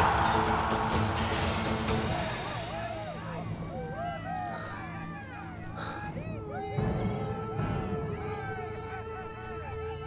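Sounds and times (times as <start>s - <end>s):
dramatic background music: 0.0s - 10.0s
voices calling out: 0.0s - 10.0s.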